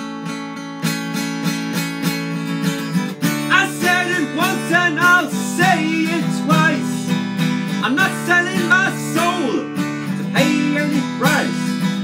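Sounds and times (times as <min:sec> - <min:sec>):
acoustic guitar strumming chords: 0:00.0 - 0:12.0
man singing: 0:03.2 - 0:12.0.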